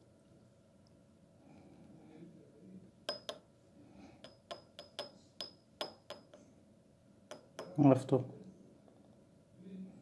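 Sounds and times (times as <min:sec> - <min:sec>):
glass jar clinking: 0:03.1 - 0:03.4, 0:04.3 - 0:06.4.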